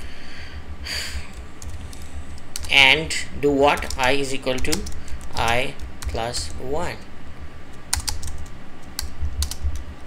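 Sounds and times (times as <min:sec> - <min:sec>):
steady low hum: 0:00.0 - 0:10.0
computer keyboard typing: 0:01.3 - 0:02.8, 0:03.6 - 0:06.7, 0:07.9 - 0:09.8.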